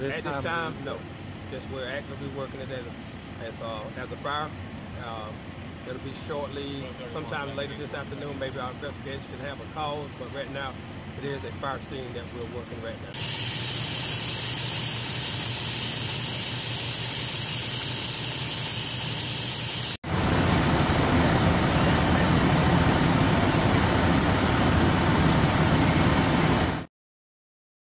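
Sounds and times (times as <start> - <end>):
water hissing from hose: 13.2 - 20.0.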